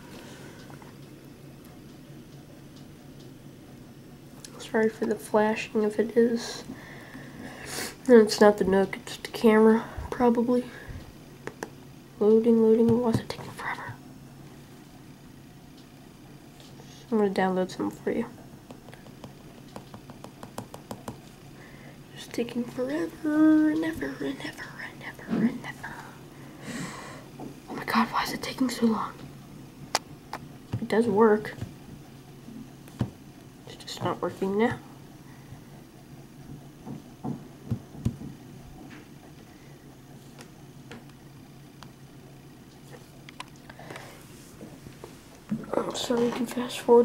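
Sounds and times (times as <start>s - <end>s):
low steady hum: 0.0s - 47.0s.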